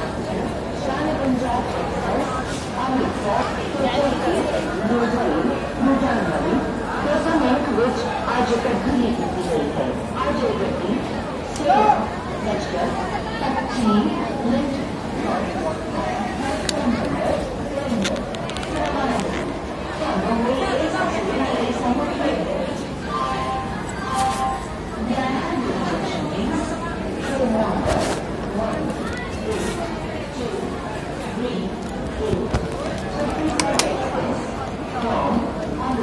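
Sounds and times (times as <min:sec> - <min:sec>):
chatter of overlapping voices: 0:00.0 - 0:36.0.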